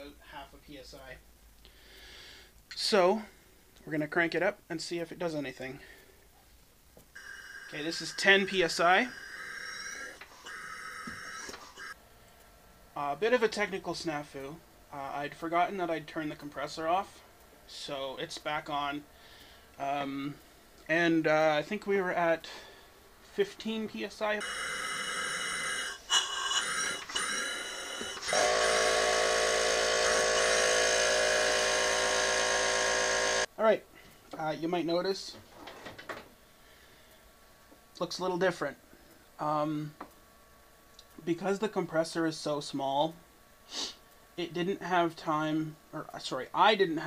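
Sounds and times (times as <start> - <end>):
compressed air hissing and whistling: 7.2 - 12.0, 24.7 - 33.5, 43.7 - 44.0
air hissing: 43.6 - 44.0.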